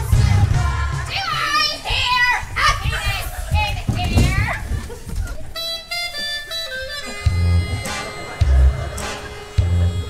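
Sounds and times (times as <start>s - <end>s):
girls shouting excitedly: 1.0s - 4.7s.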